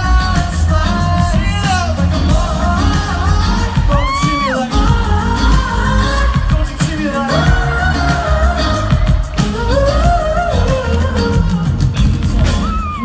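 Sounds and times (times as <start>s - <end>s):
live pop band playing: 0.0s - 13.0s
male lead vocal: 0.0s - 13.0s.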